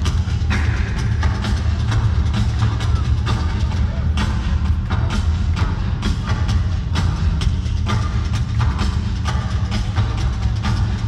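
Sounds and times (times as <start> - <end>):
live heavy metal music: 0.0 - 11.0.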